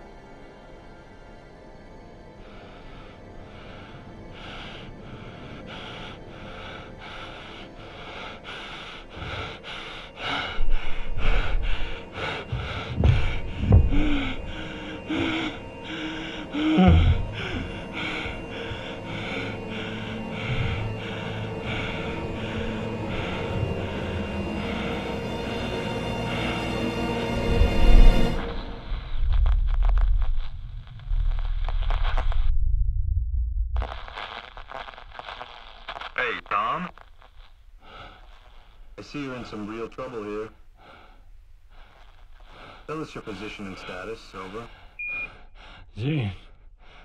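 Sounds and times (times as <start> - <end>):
tense film score with pulse: 0.0 - 47.0.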